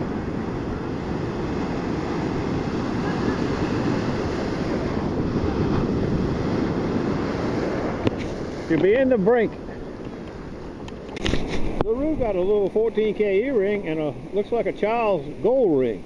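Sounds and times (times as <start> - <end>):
ocean surf washing over sand: 0.0 - 16.0
wind rumbling on microphone: 0.0 - 16.0.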